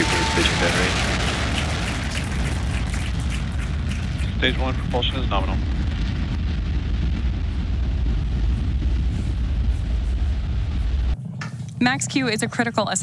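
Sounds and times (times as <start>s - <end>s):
rocket engines rumbling: 0.0s - 13.0s.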